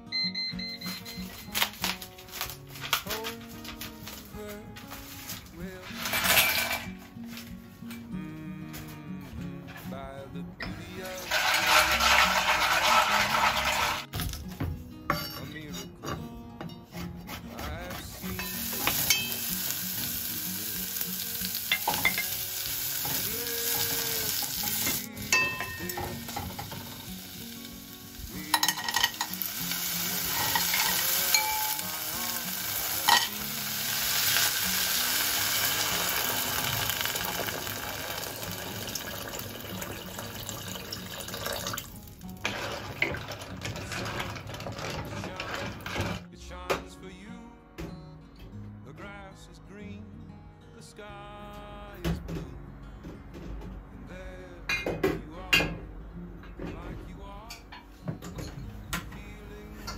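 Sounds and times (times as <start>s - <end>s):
seafood sizzling in a pan: 18.5s - 25.1s, 26.2s - 39.7s
shells clattering against pan: 28.5s - 29.4s.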